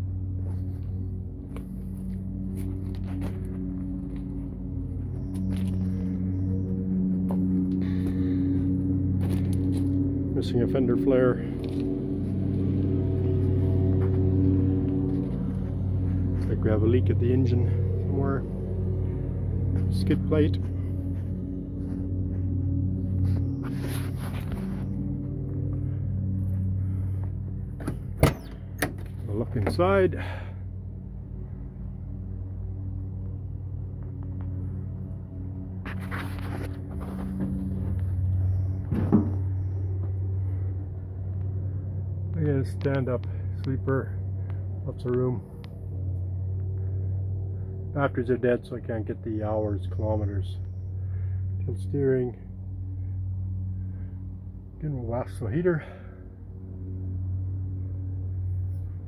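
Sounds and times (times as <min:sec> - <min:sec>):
engine humming: 0:00.0 - 0:59.0
footsteps on gravel: 0:00.4 - 0:10.3, 0:11.4 - 0:27.7, 0:35.8 - 0:38.4.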